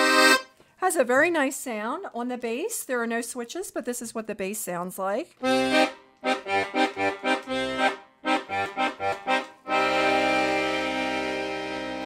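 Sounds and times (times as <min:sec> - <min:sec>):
accordion bass notes and chords: 0:00.0 - 0:00.6, 0:05.4 - 0:12.0.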